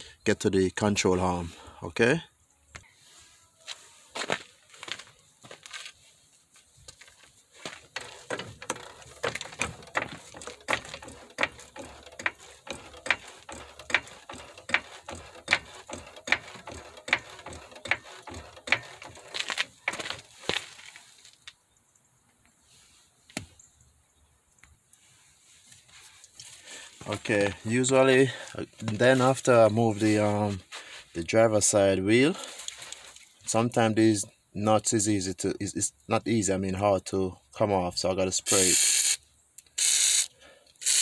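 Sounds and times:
floor jack clicking and clunking: 0:07.9 - 0:20.4.

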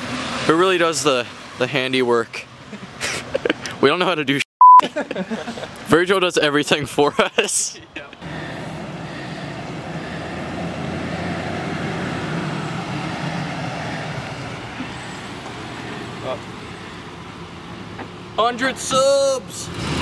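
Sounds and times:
truck driving slowly: 0:06.8 - 0:20.0.

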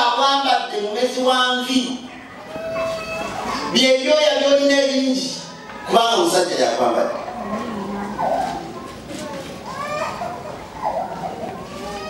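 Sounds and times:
man speaking over loudspeakers: 0:00.0 - 0:02.1, 0:03.7 - 0:07.3.

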